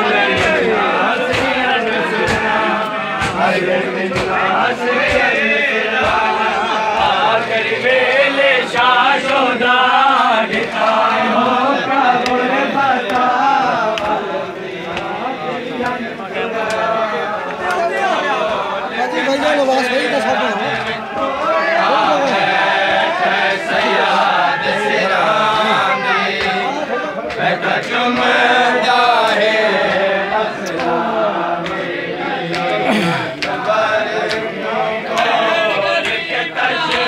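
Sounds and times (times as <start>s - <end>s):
men chanting a lament: 0.0s - 37.0s.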